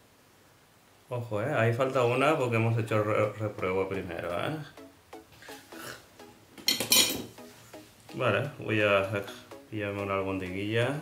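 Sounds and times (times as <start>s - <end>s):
faint background music: 1.1s - 11.0s
ceramic plate clinking: 6.6s - 7.4s.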